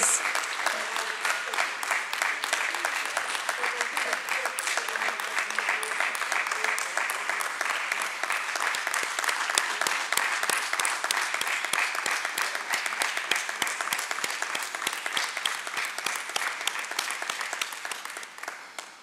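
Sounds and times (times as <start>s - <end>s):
crowd applauding: 0.0s - 19.0s.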